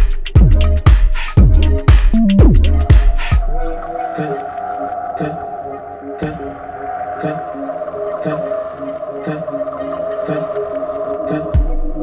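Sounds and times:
deep bass kicks: 0.0 - 3.6
electronic beat: 0.0 - 3.8.

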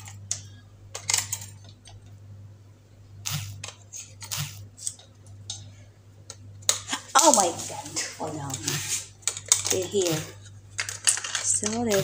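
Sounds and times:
steady low hum: 0.0 - 12.0
batteries handled: 8.5 - 12.0.

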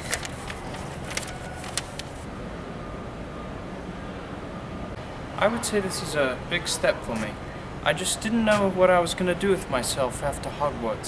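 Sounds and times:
paper crinkling: 0.0 - 2.3.

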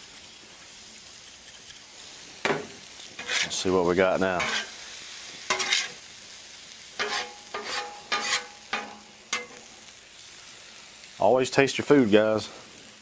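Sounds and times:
light steady sizzle: 0.0 - 13.0
metal spatula scraping griddle: 1.2 - 6.1, 7.0 - 9.7.

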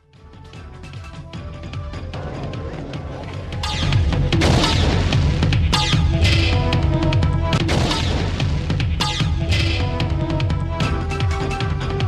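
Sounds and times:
electronic television theme music: 0.0 - 12.0
sharp percussion hits: 2.2 - 12.0.

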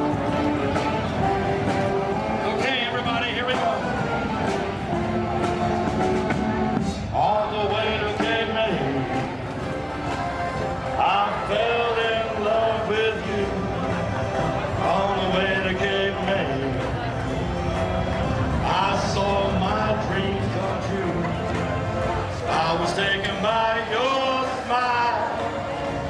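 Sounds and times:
accordions: 0.0 - 26.0
saxophones: 0.0 - 26.0
string band playing: 0.0 - 26.0.

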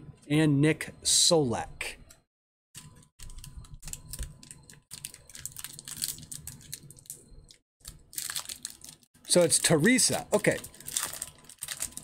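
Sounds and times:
foil card pack handled: 8.1 - 12.0.

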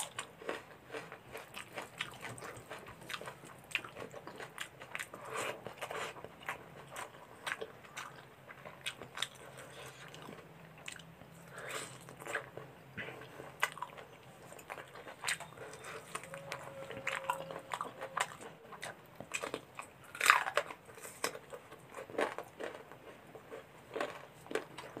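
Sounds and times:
close-up chewing and mouth sounds: 0.0 - 25.0.

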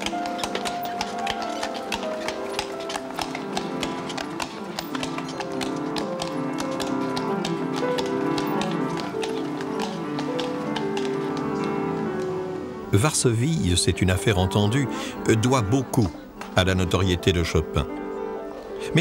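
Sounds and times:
horse hooves on cobblestones: 0.0 - 18.8
background music with held notes: 0.0 - 19.0.

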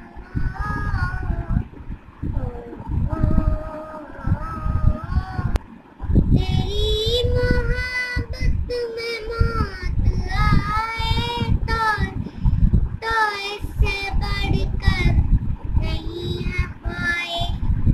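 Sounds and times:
boy singing long held notes: 0.0 - 1.7, 2.3 - 5.6, 6.4 - 12.3, 15.8 - 17.6
low rumble: 0.0 - 17.9.

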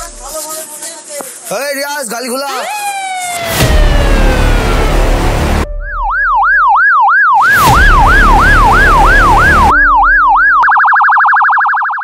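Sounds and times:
police siren wailing: 2.6 - 12.0
loud rushing noise: 3.4 - 5.7.

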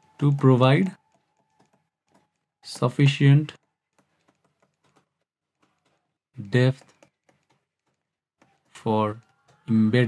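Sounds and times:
stylus tapping on pen tablet: 0.0 - 9.8.

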